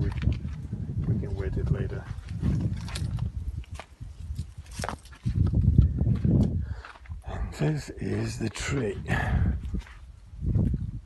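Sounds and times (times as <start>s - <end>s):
footsteps on dry soil and leaves: 0.0s - 10.9s.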